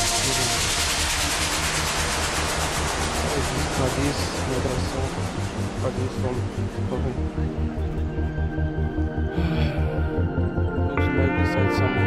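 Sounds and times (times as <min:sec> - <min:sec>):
hissing noise sweep: 0:00.0 - 0:07.6.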